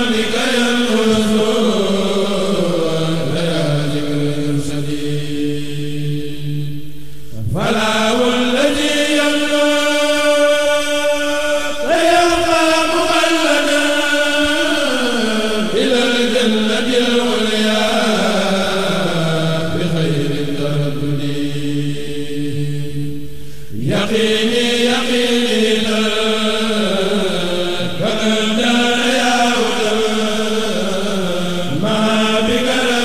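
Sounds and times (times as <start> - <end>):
person chanting religious verse: 0.0 - 33.0.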